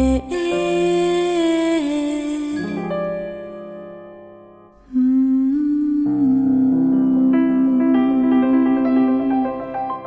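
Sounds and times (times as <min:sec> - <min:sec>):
person humming slow melody: 0:04.8 - 0:09.4.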